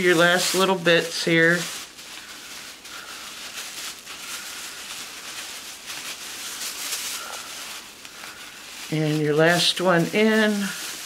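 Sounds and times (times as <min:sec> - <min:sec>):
plastic bag strips rustling: 0:00.0 - 0:11.0.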